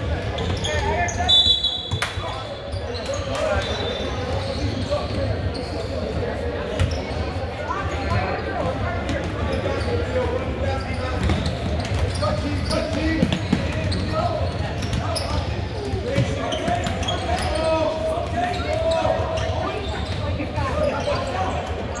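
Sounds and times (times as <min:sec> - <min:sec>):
echoing chatter of people: 0:00.0 - 0:22.0.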